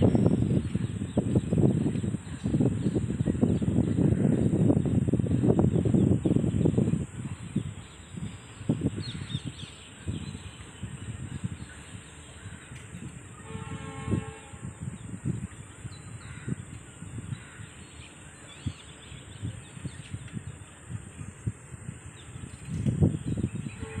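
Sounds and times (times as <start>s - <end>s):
birds calling: 0.0s - 24.0s
low gusty rumble: 0.0s - 24.0s.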